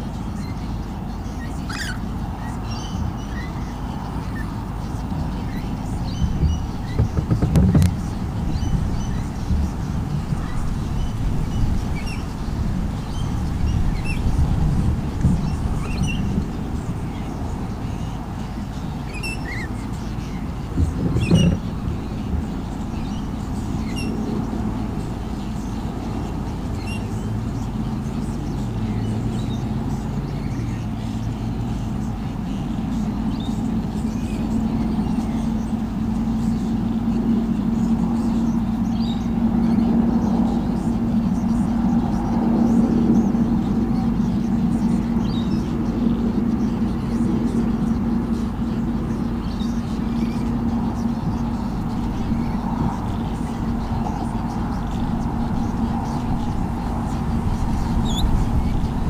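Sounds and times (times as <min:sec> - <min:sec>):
engine humming: 0:00.0 - 0:59.0
short knock: 0:06.9 - 0:08.0.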